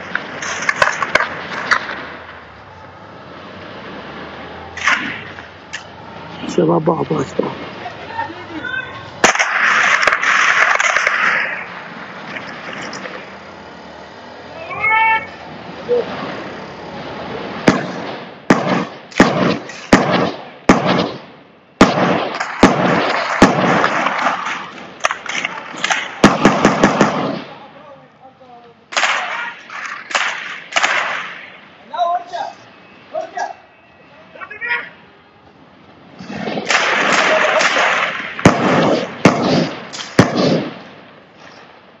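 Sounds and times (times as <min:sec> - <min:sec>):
faint sharp cracks: 0:00.0 - 0:02.4, 0:04.8 - 0:06.0, 0:09.2 - 0:13.3, 0:17.7 - 0:27.6, 0:28.9 - 0:31.6, 0:36.2 - 0:41.9
street noise: 0:00.0 - 0:42.0
sharp single gunshots: 0:09.2 - 0:11.6, 0:17.6 - 0:27.6, 0:28.9 - 0:31.5, 0:36.2 - 0:40.9
loud high-pitched shout: 0:14.6 - 0:16.1
rapid gunfire: 0:17.6 - 0:24.5, 0:25.8 - 0:27.6, 0:36.6 - 0:40.8.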